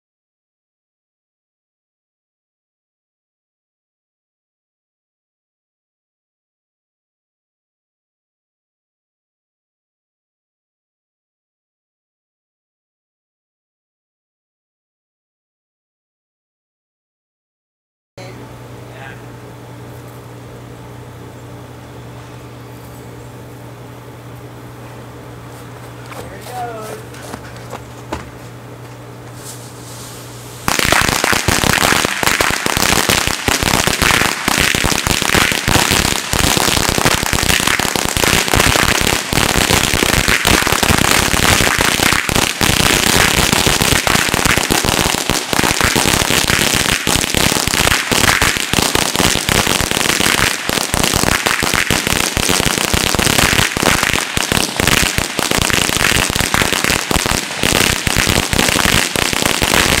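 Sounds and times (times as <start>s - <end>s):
firecrackers going off: 29.8s - 60.0s.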